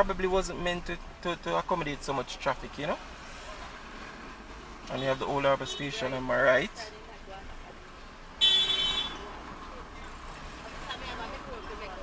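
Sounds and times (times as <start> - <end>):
street traffic: 0.0 - 12.0
car horn toot: 8.4 - 9.3.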